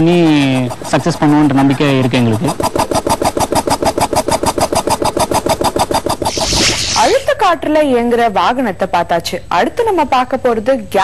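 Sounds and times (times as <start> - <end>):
compressed-air engine puffing: 5.6 - 7.3
rushing hiss: 6.3 - 7.3.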